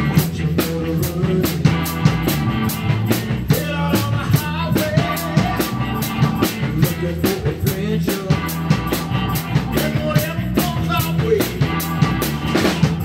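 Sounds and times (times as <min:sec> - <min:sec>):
drum kit beat: 0:00.0 - 0:13.0
rock band playing: 0:00.0 - 0:13.0.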